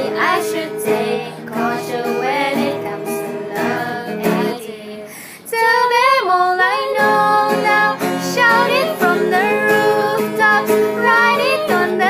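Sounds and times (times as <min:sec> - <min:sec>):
acoustic guitar: 0:00.0 - 0:12.0
women singing pop ballad: 0:00.0 - 0:12.0.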